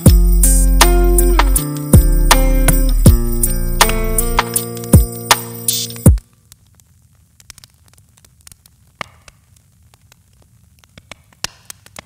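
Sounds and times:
record crackle and static: 0.0 - 12.0
record clicks and pops: 5.8 - 12.0.

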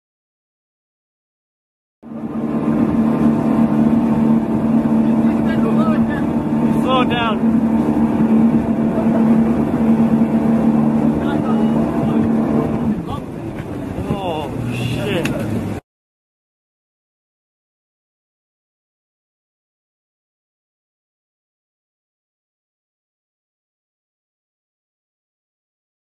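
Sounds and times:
speedboat engine drone: 2.0 - 15.8
water noise: 2.0 - 15.8
wind: 2.0 - 15.8.

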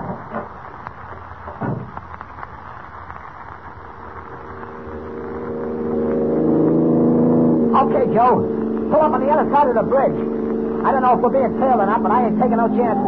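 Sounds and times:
broadcast recording hiss: 0.0 - 13.0
car engine running: 3.1 - 13.0.

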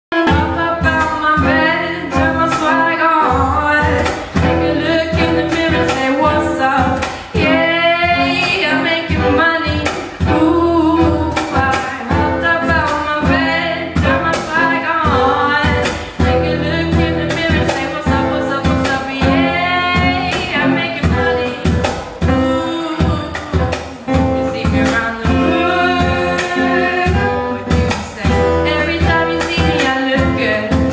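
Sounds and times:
person singing: 0.1 - 30.9
strummed acoustic guitar: 0.1 - 30.9
percussion strikes: 0.2 - 30.9.

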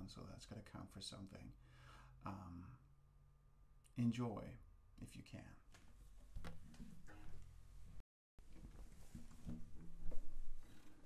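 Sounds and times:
acoustic guitar being handled: 5.7 - 7.6, 8.5 - 11.0.

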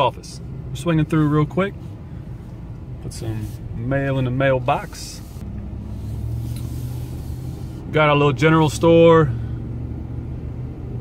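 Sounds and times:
road rumble: 0.0 - 11.0
truck engine hum: 0.0 - 11.0.

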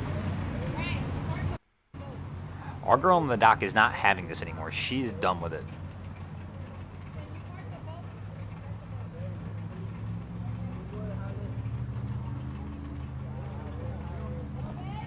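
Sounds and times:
distant voices: 0.0 - 15.0
outboard motor idling: 0.0 - 15.0.

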